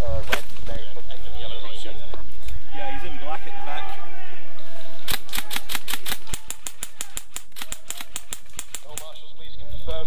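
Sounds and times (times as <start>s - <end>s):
airsoft gun rapid firing: 5.1s - 9.2s.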